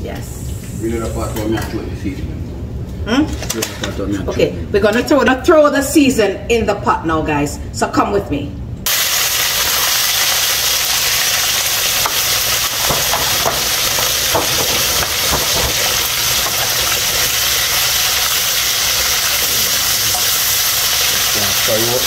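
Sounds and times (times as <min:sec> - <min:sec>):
vegetables sizzling in oil: 0:08.9 - 0:22.0
stirring in pan: 0:11.1 - 0:22.0.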